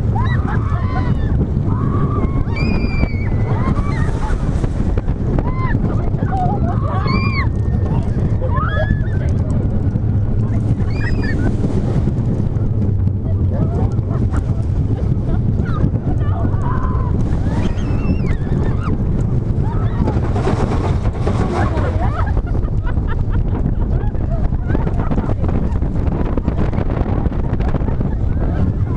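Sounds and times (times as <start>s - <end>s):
riders whooping and screaming: 0.0s - 11.8s, 12.4s - 28.9s
roller coaster wheels rumbling: 0.0s - 28.9s
wind buffeting microphone: 0.0s - 28.9s.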